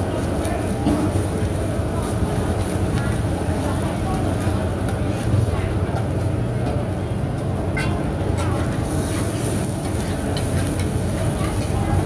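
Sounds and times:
omelette frying on a pan: 0.0s - 12.0s.

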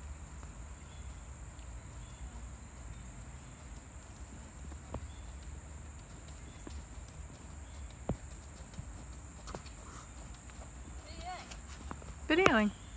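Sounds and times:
horse hoofbeats on sand: 1.9s - 12.9s.

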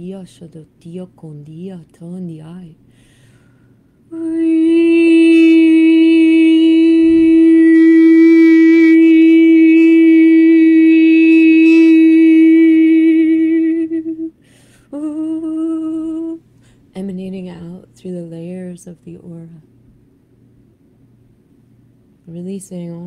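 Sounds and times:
breath: 2.9s - 4.0s, 14.4s - 14.9s, 16.6s - 16.9s
low wavering vocal sound: 4.1s - 16.4s
woman holding a sung note: 4.1s - 16.4s.

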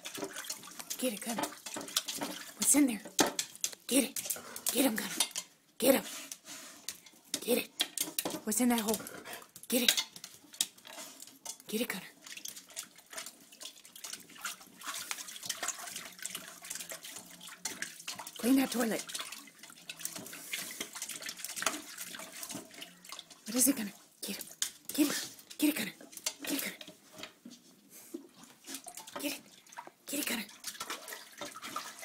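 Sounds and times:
water splashing in toilet bowl: 0.0s - 27.4s, 28.3s - 32.0s.

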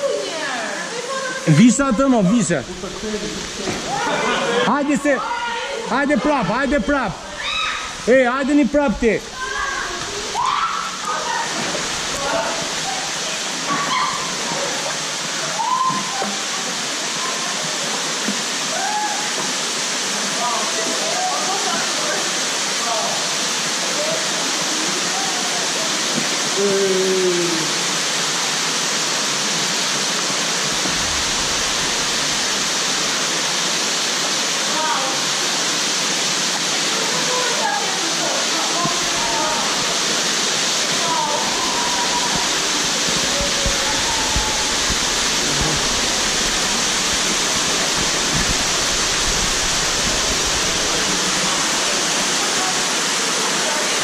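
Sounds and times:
waterfall rushing: 0.0s - 54.0s
faint voices: 40.9s - 49.0s.

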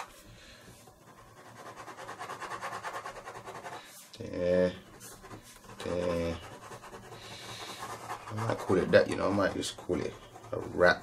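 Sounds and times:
pen scratching on paper: 1.0s - 4.0s, 4.7s - 11.0s.

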